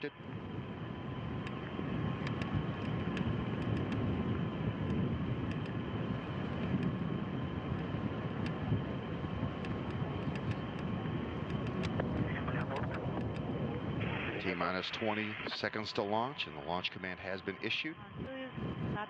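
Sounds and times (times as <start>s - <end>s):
small clicks: 4.8s - 5.8s, 9.6s - 13.5s.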